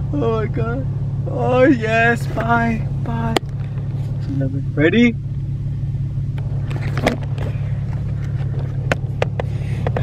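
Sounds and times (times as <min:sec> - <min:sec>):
car idling hum: 0:00.0 - 0:10.0.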